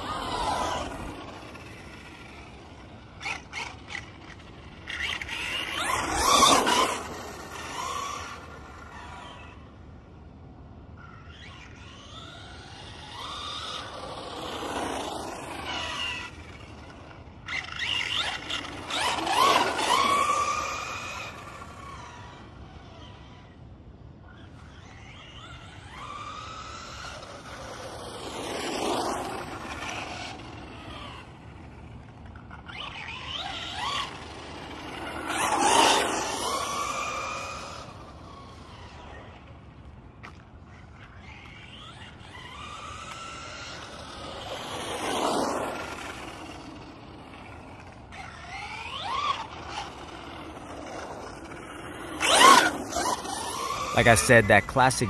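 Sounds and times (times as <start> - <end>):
electric toy car motor whine: 0.0 - 10.1, 11.0 - 54.6.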